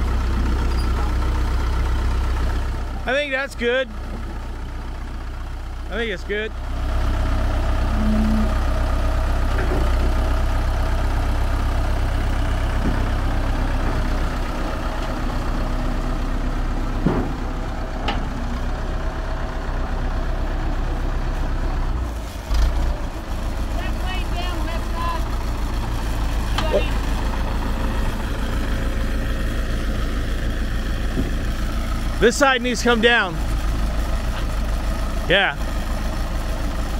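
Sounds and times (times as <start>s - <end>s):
bulldozer diesel engine running: 0.0s - 36.9s.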